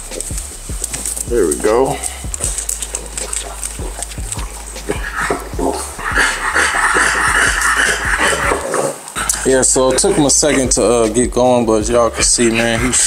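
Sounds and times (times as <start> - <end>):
dog breathing noisily: 0.0 - 11.2, 11.8 - 13.0
dog sniffing: 0.0 - 13.0.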